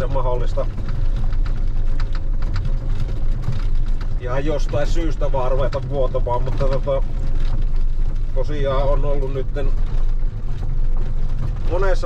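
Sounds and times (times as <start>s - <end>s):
light rattles: 0.0s - 12.0s.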